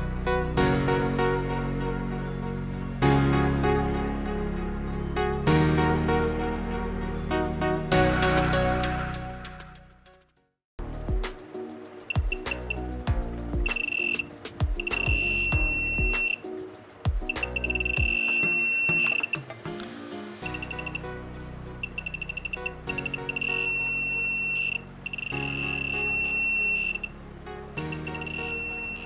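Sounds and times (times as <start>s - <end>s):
background music: 0.0s - 29.0s
metal detector buzzer beeping: 13.7s - 16.4s, 17.3s - 19.5s, 21.8s - 27.1s, 27.8s - 29.0s.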